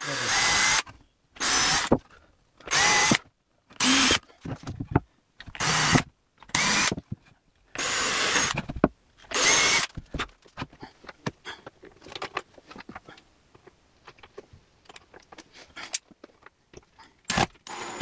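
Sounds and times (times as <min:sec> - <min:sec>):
cordless drill boring into wood: 0:00.0 - 0:02.0, 0:02.7 - 0:03.2, 0:03.8 - 0:04.2, 0:05.6 - 0:07.0, 0:07.8 - 0:08.6, 0:09.3 - 0:10.0, 0:17.3 - 0:18.0.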